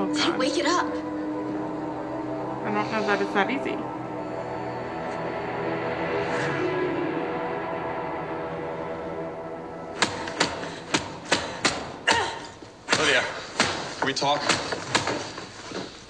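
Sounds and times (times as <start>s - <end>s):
held music notes: 0.0s - 12.0s.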